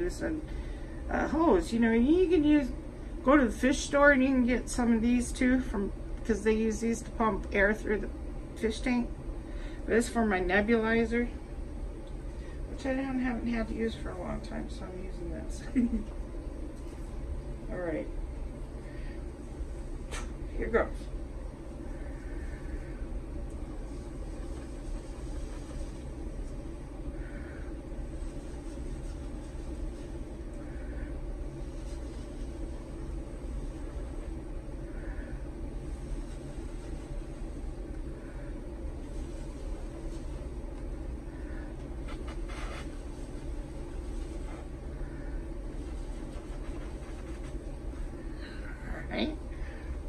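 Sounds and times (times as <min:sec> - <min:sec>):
low background rumble: 0:00.0 - 0:50.0.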